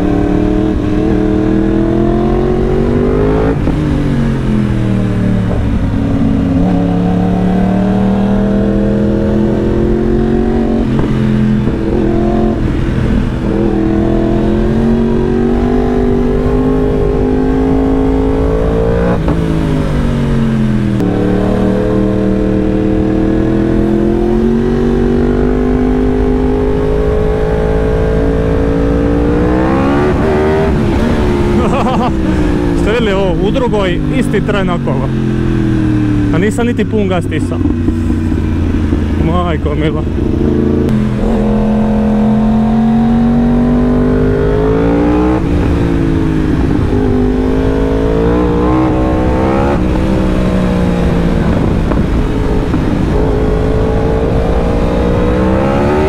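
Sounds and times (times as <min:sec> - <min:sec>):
motorcycle engine revving: 0:00.0 - 0:56.0.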